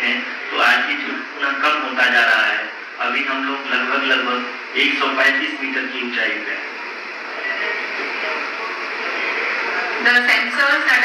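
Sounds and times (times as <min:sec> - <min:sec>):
faint voices: 0:00.0 - 0:11.0
steady background hiss: 0:00.0 - 0:11.0.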